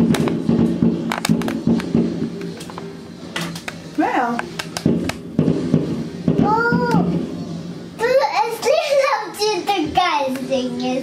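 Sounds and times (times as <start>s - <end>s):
fireworks bangs and crackles: 0.0s - 8.0s.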